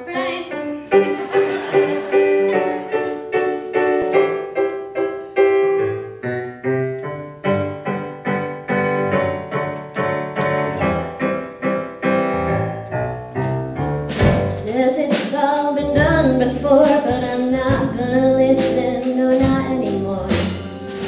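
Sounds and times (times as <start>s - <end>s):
piano chords: 0.0s - 21.0s
low bass notes: 15.8s - 21.0s.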